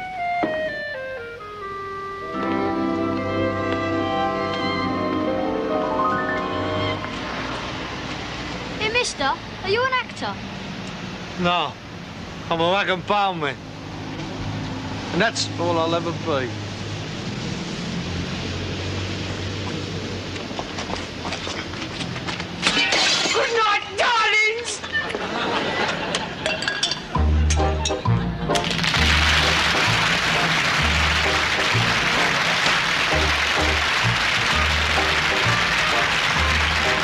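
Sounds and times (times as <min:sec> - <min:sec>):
theme music with bass line: 0:00.0 - 0:07.7, 0:27.1 - 0:37.0
cracking or breaking sounds: 0:28.5 - 0:29.9
studio audience applause: 0:28.5 - 0:37.0.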